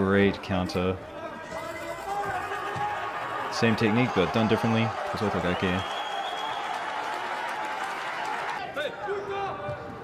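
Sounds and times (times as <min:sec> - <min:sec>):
audience applauding and cheering: 0:01.8 - 0:08.8.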